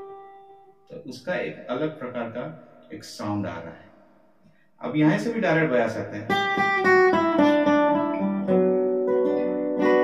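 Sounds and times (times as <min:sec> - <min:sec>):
acoustic guitar melody: 0:00.0 - 0:00.9, 0:06.3 - 0:10.0.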